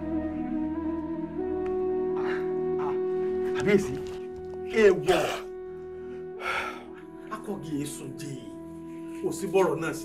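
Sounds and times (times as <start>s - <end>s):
film music with held tones: 0.0s - 10.0s.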